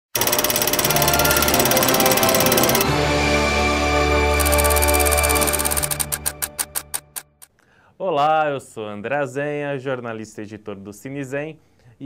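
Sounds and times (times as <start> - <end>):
film projector clattering: 0.1 - 2.9, 4.3 - 7.1
intro music with held tones: 0.2 - 7.1.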